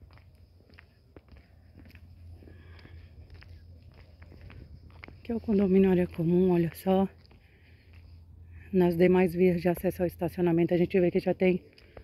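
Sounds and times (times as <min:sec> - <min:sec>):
footsteps on dirt: 0:00.0 - 0:10.2, 0:11.2 - 0:12.0
low hum: 0:00.0 - 0:12.0.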